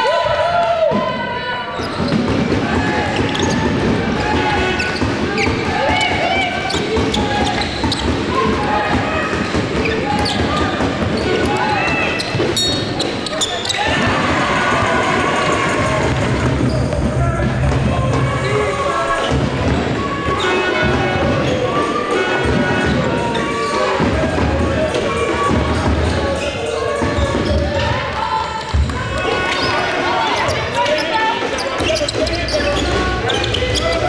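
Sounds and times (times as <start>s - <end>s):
people calling out: 0.0s - 34.0s
shoes squeaking: 4.3s - 14.0s, 28.7s - 34.0s.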